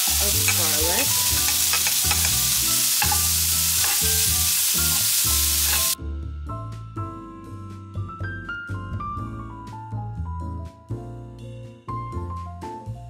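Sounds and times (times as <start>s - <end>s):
shrimp sizzling in a frying pan: 0.0s - 6.0s.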